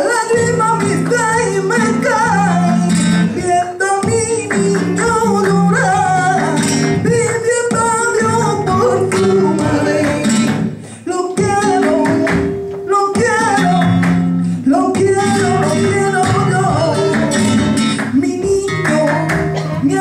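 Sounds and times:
flamenco guitar: 0.0s - 20.0s
hand clapping: 0.1s - 20.0s
woman singing: 7.2s - 10.6s.

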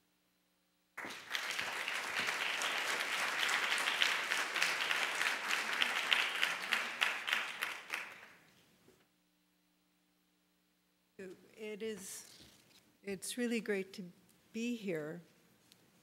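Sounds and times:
audience applauding: 1.0s - 8.4s.

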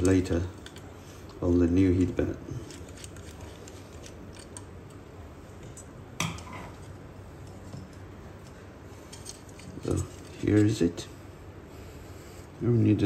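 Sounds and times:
screwdriver clicking and scraping: 2.6s - 5.0s.

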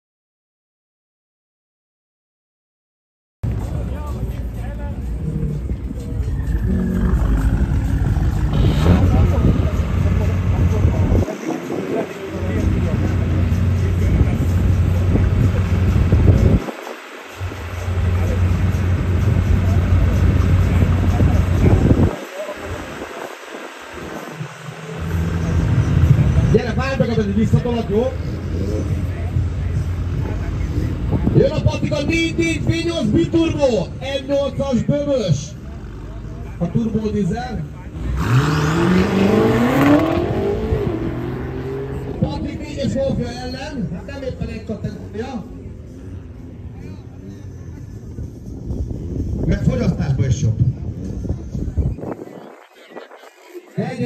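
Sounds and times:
car engine running at low revs: 3.4s - 52.0s
people talking: 3.6s - 41.0s, 41.8s - 54.0s.

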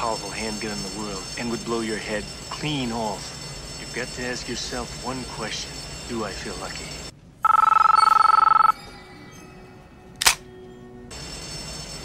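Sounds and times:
mobile phone ringing: 7.4s - 8.8s.

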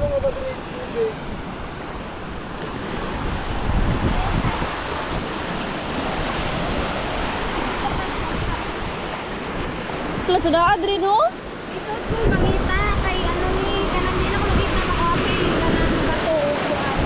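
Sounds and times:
surf breaking on a beach: 0.0s - 17.0s
wind buffeting the microphone: 0.0s - 17.0s.

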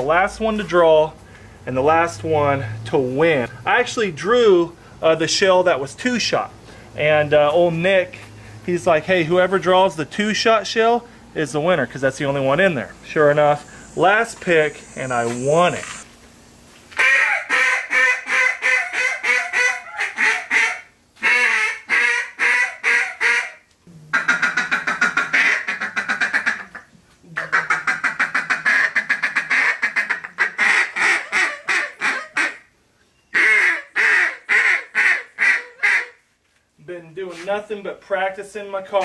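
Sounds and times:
hand-blown waterfowl call: 17.0s - 32.7s, 33.3s - 36.2s.

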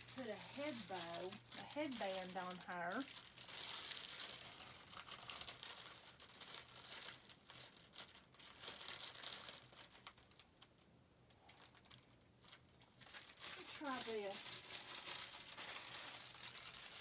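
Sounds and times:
material rustling and crinkling: 0.0s - 17.0s.

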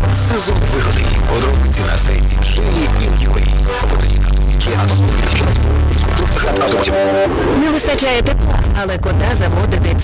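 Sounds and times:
music with heavy bass line: 0.0s - 10.0s.

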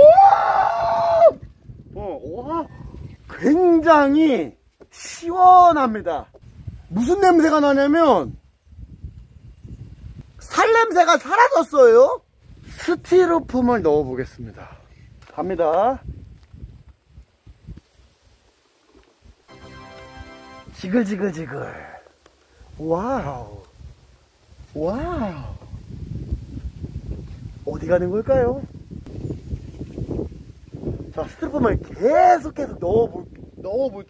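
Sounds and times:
person screaming high-pitched: 0.0s - 1.4s.

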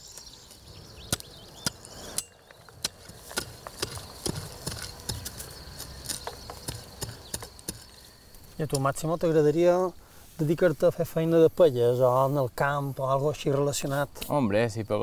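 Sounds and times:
hand hoe knocking into dry soil: 1.1s - 8.0s.

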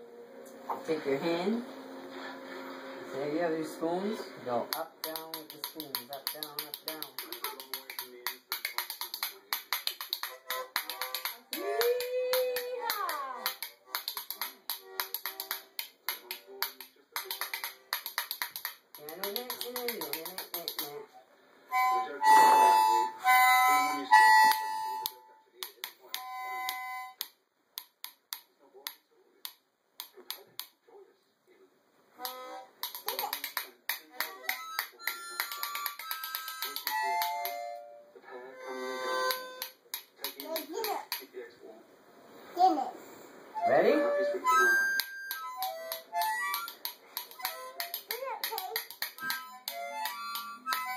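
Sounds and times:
harmonica notes and chords: 10.2s - 11.8s, 21.7s - 25.4s, 26.1s - 27.2s, 32.2s - 32.8s, 34.3s - 39.8s, 43.5s - 48.4s, 49.2s - 50.9s.

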